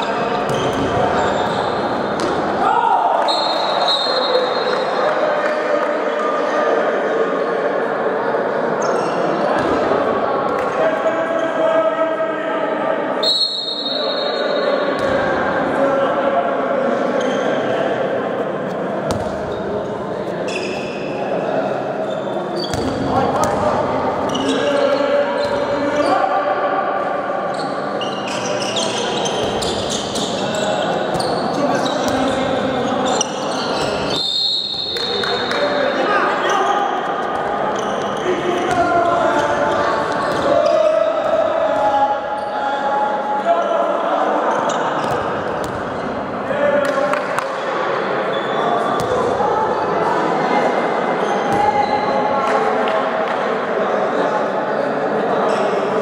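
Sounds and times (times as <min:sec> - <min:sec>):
players shouting: 0:02.2 - 0:04.7
ball bouncing on hall floor: 0:19.1 - 0:19.6, 0:22.6 - 0:23.7, 0:49.0 - 0:49.4.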